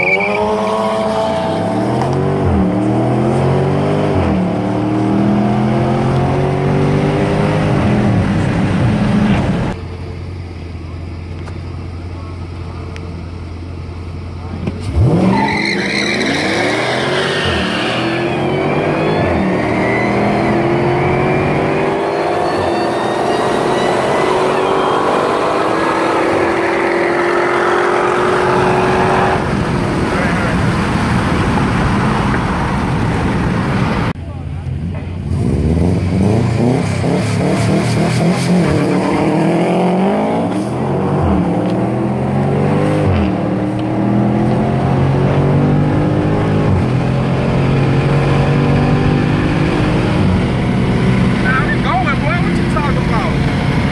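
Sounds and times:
car engines revving through gears: 0:00.0 - 0:09.8, 0:14.3 - 0:34.2, 0:34.8 - 0:53.9.

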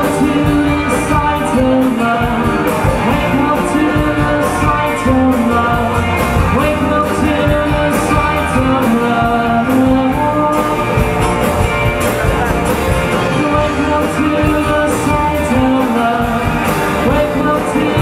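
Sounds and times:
drum kit beat: 0:00.0 - 0:18.0
electric guitar: 0:00.0 - 0:18.0
person singing: 0:00.0 - 0:18.0
strummed acoustic guitar: 0:00.0 - 0:18.0.

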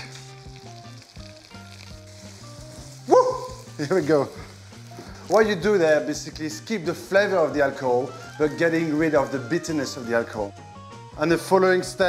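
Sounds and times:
food sizzling in a pot: 0:00.0 - 0:10.4
soft background music: 0:00.0 - 0:12.0.

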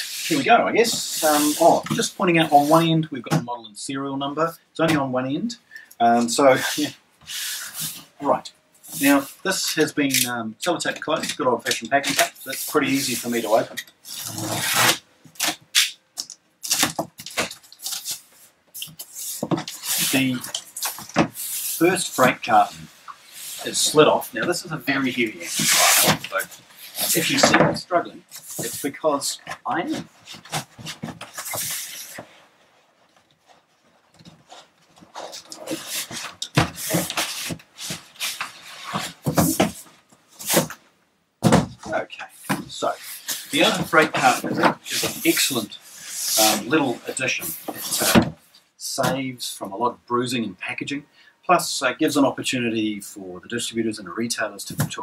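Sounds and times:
cardboard and tape scraping: 0:00.0 - 0:02.9, 0:11.2 - 0:16.0, 0:16.6 - 0:32.5, 0:33.1 - 0:40.8, 0:42.4 - 0:48.3
box scuffs and bumps: 0:34.4 - 0:40.8, 0:41.4 - 0:45.4.

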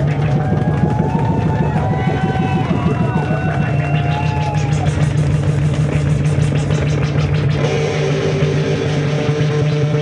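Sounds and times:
distorted electric guitar noise: 0:00.0 - 0:10.0.

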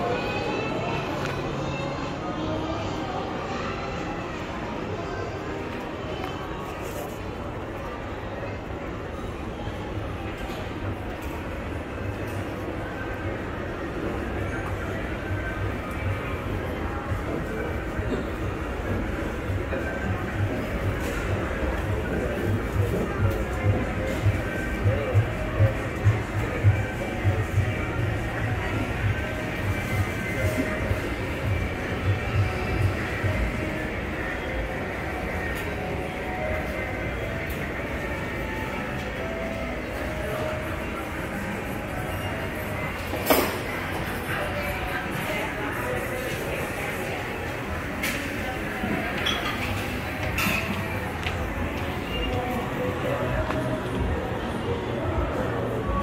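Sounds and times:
shopping mall hubbub: 0:00.0 - 0:56.0.

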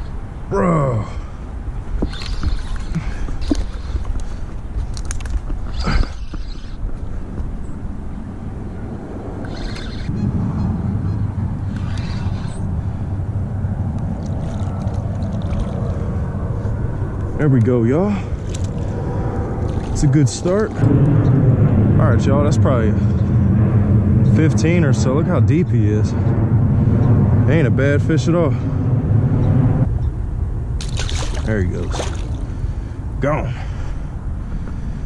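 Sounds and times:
low rumble: 0:00.0 - 0:35.0.

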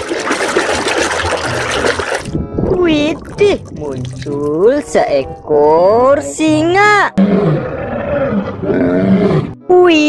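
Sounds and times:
water splashing in a basin: 0:00.0 - 0:04.8.

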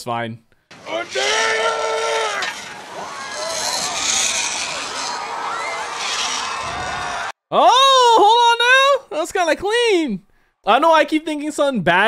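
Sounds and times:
crowd shouting and cheering: 0:00.7 - 0:07.4
person yelling: 0:00.8 - 0:02.5, 0:07.5 - 0:09.1.

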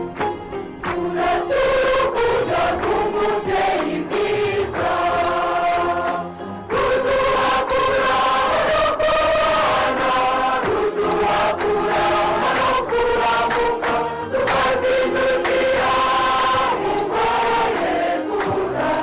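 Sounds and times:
church choir singing a hymn: 0:00.8 - 0:19.0.

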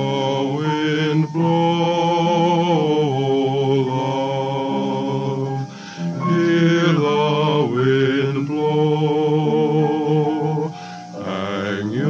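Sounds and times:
male voices singing in harmony: 0:00.0 - 0:12.0.

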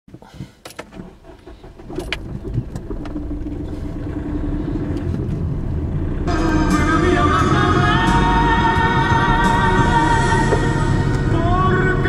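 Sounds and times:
car engine and tyre rumble: 0:00.1 - 0:12.0.

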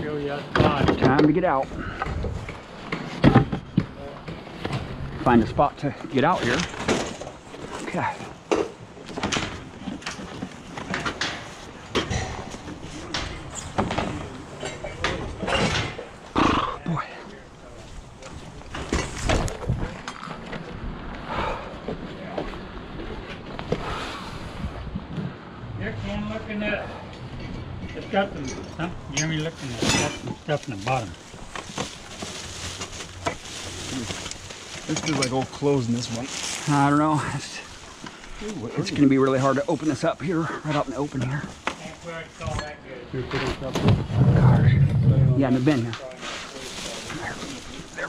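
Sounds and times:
rustling and clattering: 0:00.3 - 0:16.6, 0:17.7 - 0:21.1, 0:27.1 - 0:48.0
indistinct voices: 0:42.4 - 0:48.0.

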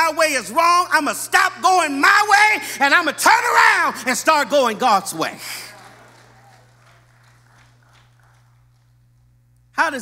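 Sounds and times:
man's preaching voice echoing: 0:00.0 - 0:05.8, 0:09.8 - 0:10.0
faint low hum: 0:03.0 - 0:10.0.

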